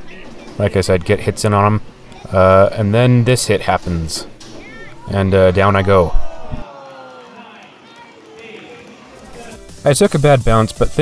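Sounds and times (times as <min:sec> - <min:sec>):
chatter of onlookers: 0:04.6 - 0:09.6.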